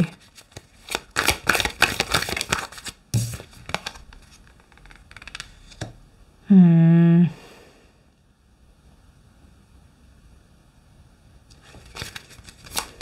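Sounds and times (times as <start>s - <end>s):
cards flicking and rustling: 0.0s - 5.9s, 11.5s - 13.0s.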